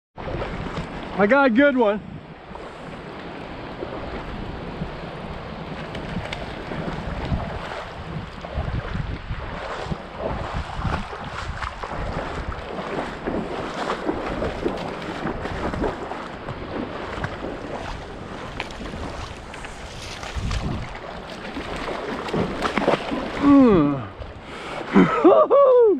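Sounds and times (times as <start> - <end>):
wind rumbling on microphone: 0.2 - 1.2, 1.8 - 25.1
river water rushing: 0.2 - 8.7, 9.3 - 25.1
small splashy ticks: 5.6 - 8.6, 10.6 - 23.4.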